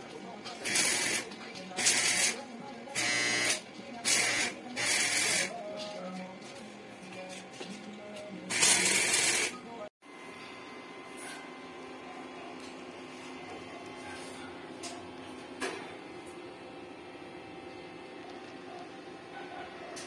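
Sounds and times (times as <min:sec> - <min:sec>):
arc welder crackling and hissing: 0:00.0 - 0:06.4, 0:08.2 - 0:09.6.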